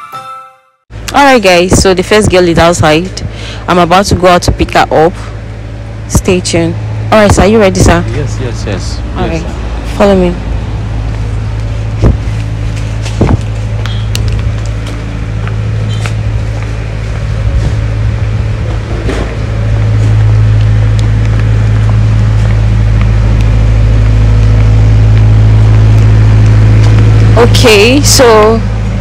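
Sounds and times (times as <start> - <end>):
low engine hum: 0.9 - 29.0.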